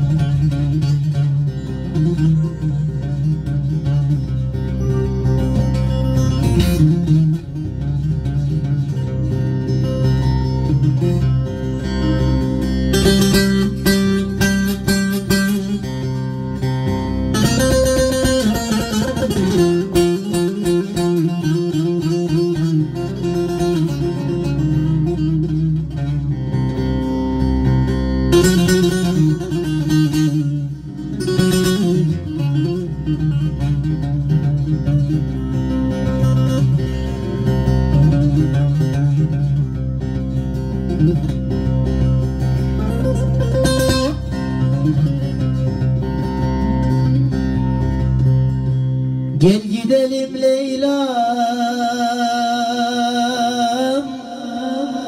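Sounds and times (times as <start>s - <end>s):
long-necked lute melody: 0.0s - 55.0s.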